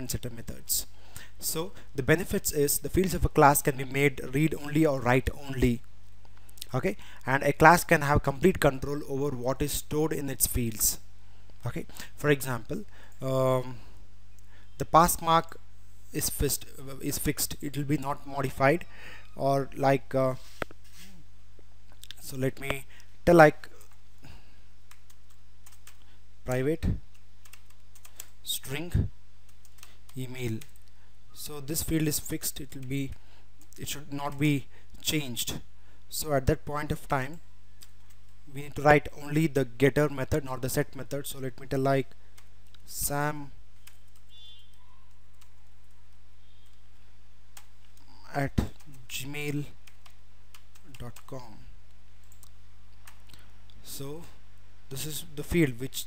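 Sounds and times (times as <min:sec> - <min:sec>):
low electrical hum: 0:00.0 - 0:56.0
computer keyboard typing: 0:24.9 - 0:26.0, 0:27.1 - 0:28.3, 0:29.5 - 0:30.0.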